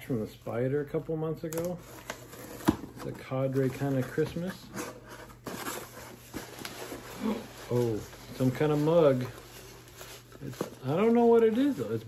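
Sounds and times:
gift packaging rustling: 0.2 - 12.0.

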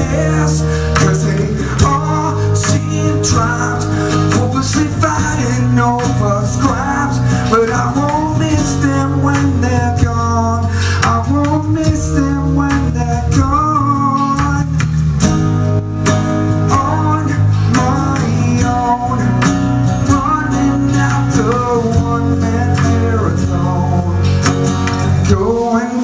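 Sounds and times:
man singing: 0.0 - 15.0, 16.5 - 26.0
strummed acoustic guitar: 0.0 - 26.0.

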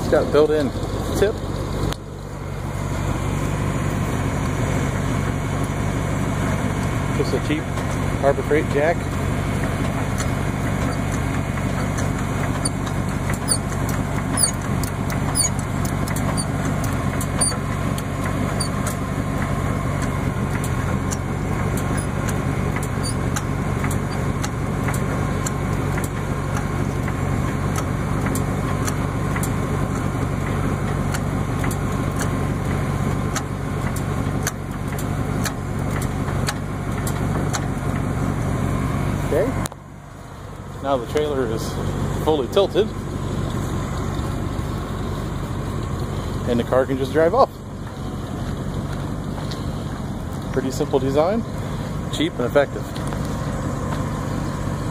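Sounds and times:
car engine idling: 0.0 - 54.9.

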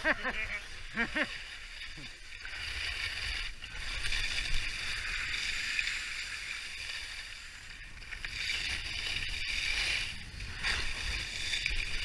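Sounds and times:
skis scraping over snow: 0.0 - 12.0.

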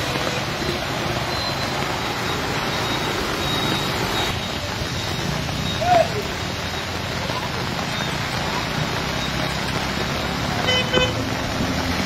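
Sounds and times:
heavy rain: 0.0 - 12.0
vehicle driving through water: 0.0 - 12.0.

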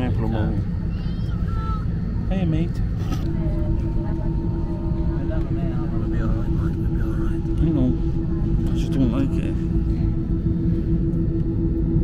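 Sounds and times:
airliner cabin drone: 0.0 - 12.0.

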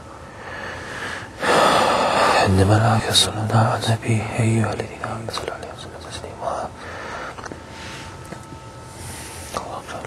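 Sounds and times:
man whispering: 2.1 - 6.8, 9.5 - 10.0.

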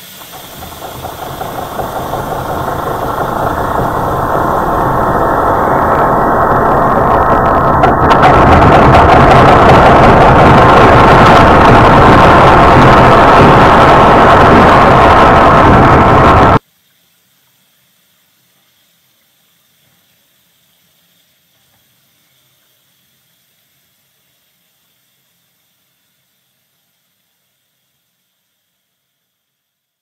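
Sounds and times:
loud rushing noise: 0.0 - 16.6.

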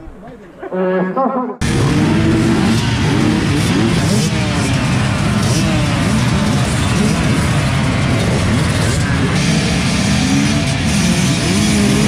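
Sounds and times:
off-road motorcycle engines revving: 1.6 - 12.0.

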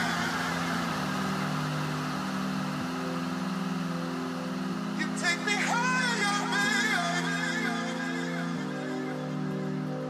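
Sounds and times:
steady hiss: 0.0 - 6.7
sustained low synth chords: 0.0 - 10.0.

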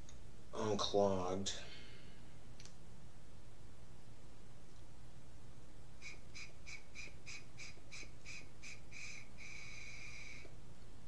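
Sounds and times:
low steady hum: 0.0 - 11.0
faint high-pitched pulsing tone: 6.0 - 10.6.

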